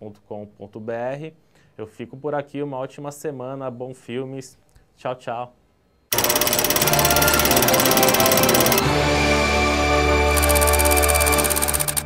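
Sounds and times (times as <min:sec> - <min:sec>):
theme music with fast beat: 0:06.5 - 0:12.0.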